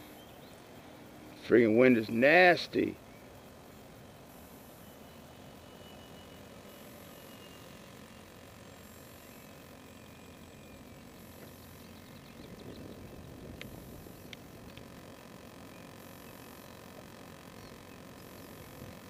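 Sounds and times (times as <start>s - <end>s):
model plane motor whine: 2.0s - 19.0s
wind noise on microphone: 12.4s - 14.8s
sharp clicks: 13.5s - 15.0s.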